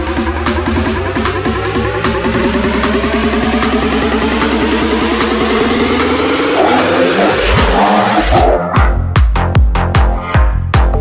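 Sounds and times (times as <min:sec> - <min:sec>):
buzzing synth line rising in pitch: 0:00.6 - 0:08.4.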